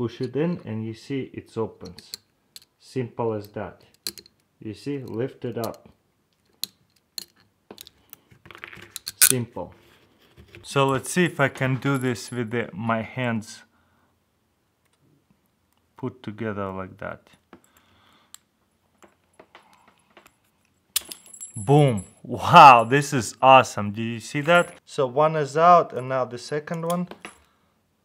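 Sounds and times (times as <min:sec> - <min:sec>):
metallic clicks of handcuff lock: 0:03.4 - 0:04.5.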